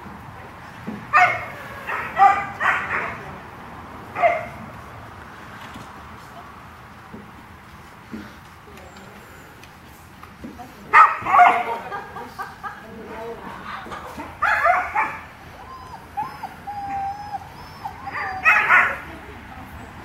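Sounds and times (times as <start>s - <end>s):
dog barking in high yips: 1.1s - 3.2s, 4.2s - 4.6s, 11.0s - 11.7s, 14.4s - 15.3s, 16.2s - 19.1s
dog whining: 14.5s - 19.1s.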